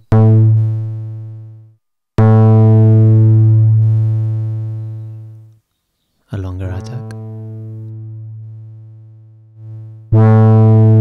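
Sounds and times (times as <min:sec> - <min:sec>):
low distorted synthesizer note: 0:00.0 - 0:05.5, 0:06.5 - 0:11.0.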